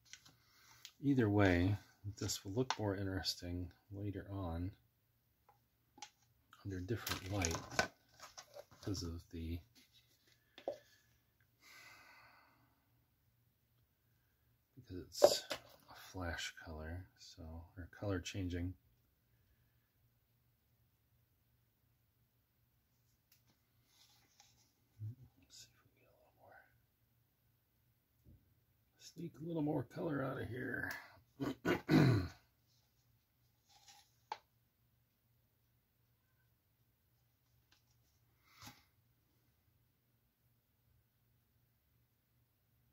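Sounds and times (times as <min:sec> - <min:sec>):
man clearing his throat: 0:31.4 - 0:32.4.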